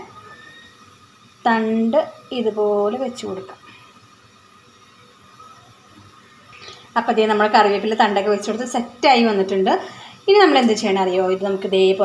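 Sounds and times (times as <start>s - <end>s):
woman speaking: 1.5s - 3.7s, 7.0s - 12.0s.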